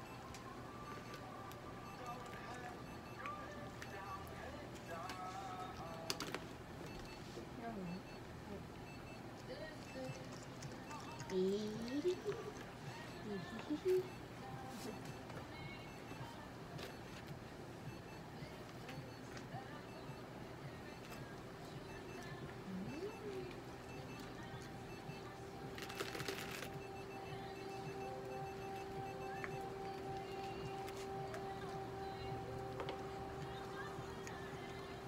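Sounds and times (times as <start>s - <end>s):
faint background music: 0.0s - 35.0s.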